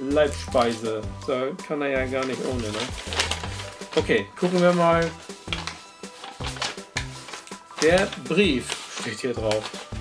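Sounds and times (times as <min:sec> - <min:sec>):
background music low notes: 0:00.0 - 0:10.0
paper rustling and crackling: 0:00.2 - 0:01.0, 0:02.0 - 0:10.0.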